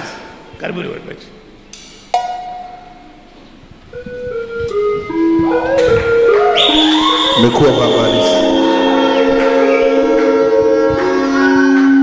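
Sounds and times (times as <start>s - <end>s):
band playing: 3.9s - 12.0s
bell-like note ringing: 7.0s - 10.8s.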